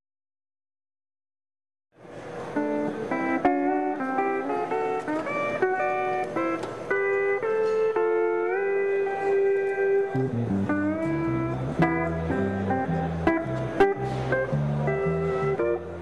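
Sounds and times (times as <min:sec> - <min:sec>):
steel guitar melody: 0:02.5 - 0:16.0.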